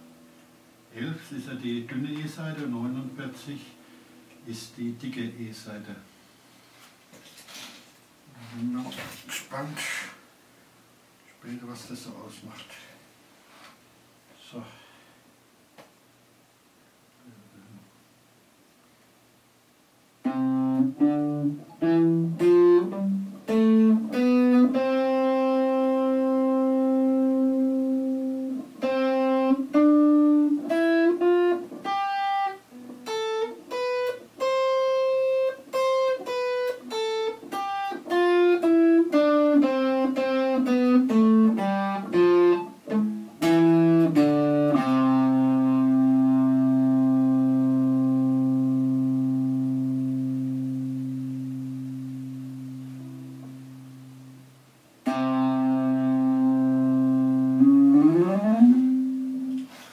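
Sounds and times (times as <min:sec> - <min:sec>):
clean electric guitar notes: 0:20.2 - 0:54.4, 0:55.0 - 0:59.8.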